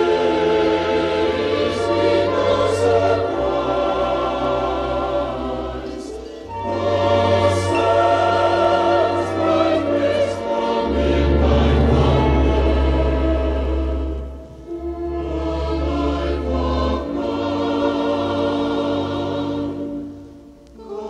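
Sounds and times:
choir singing held chords: 0.0s - 21.0s
orchestra playing: 6.3s - 18.0s
deep bass note: 10.5s - 15.1s.

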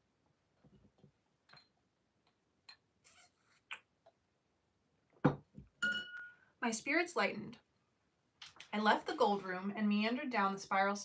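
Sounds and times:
glass clinking on hard surface: 1.5s - 1.8s, 5.8s - 6.4s.

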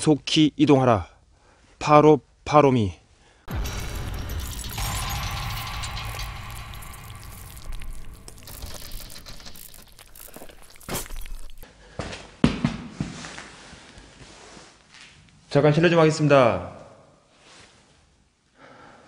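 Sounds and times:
dense low rumble: 3.5s - 11.6s.

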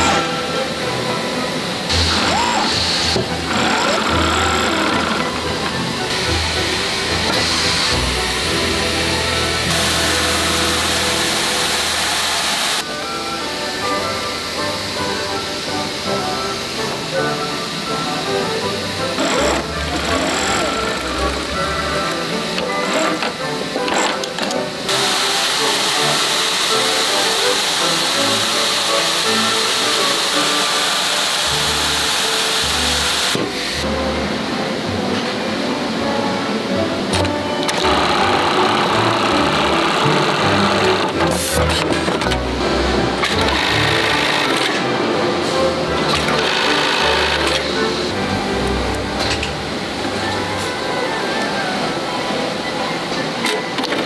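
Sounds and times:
background music: 0.0s - 54.0s
sewing machines stitching: 1.9s - 9.0s, 9.6s - 12.8s, 19.0s - 33.4s, 37.1s - 48.0s.

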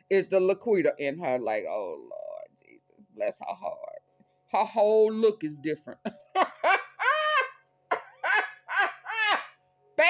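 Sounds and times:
woman laughing: 6.0s - 9.5s.

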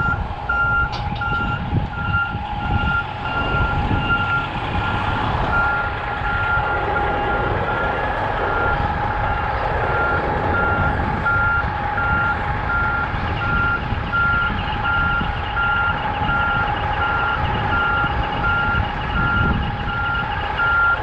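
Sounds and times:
backup alarm beeping: 0.0s - 21.0s
diesel engine running: 0.0s - 21.0s.

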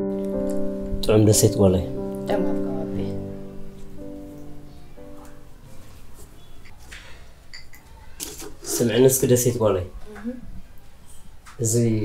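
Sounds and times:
person speaking: 1.0s - 3.4s
china cups clinking on a tray: 7.5s - 8.4s.

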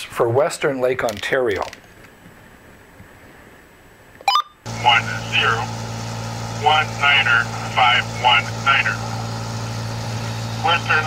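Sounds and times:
voice over radio speaker: 4.7s - 5.8s, 6.6s - 9.2s, 10.6s - 11.0s
low hum: 4.7s - 11.0s.

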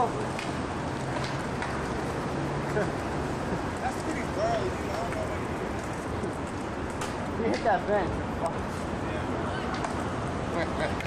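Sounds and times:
traffic noise: 0.0s - 11.0s
person laughing: 10.5s - 11.0s.

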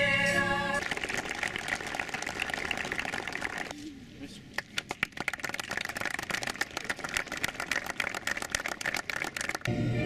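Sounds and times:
music: 0.0s - 0.8s, 9.6s - 10.0s
people applauding: 0.8s - 3.8s, 4.5s - 9.8s.

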